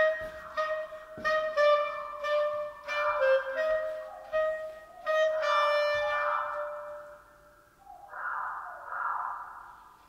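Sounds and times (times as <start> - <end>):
breathy clarinet: 0.0 - 7.4.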